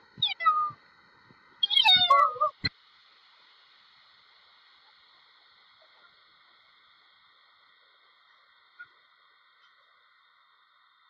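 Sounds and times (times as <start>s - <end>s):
cat meowing: 0.2s - 0.8s, 1.6s - 2.6s.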